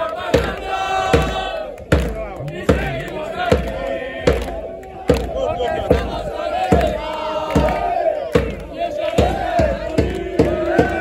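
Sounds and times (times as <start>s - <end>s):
crowd chanting in unison: 0.0s - 11.0s
bass drum beats: 0.2s - 11.0s.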